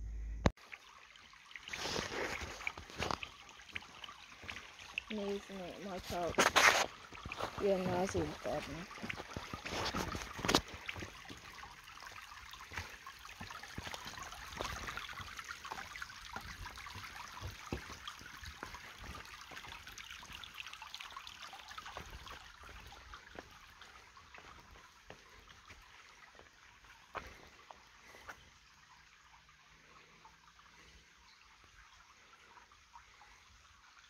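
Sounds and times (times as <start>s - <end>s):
stream trickling over stones: 0.5s - 34.0s.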